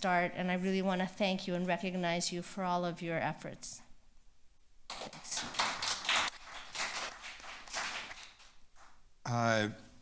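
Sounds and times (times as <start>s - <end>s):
audience applause: 5.1s - 8.6s.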